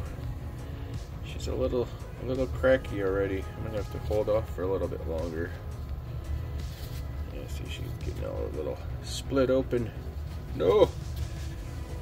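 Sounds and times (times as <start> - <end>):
steady low hum: 0.0 - 12.0
man talking: 1.2 - 5.6, 7.3 - 11.0
gloved hands rubbing dirt ball: 6.6 - 8.2.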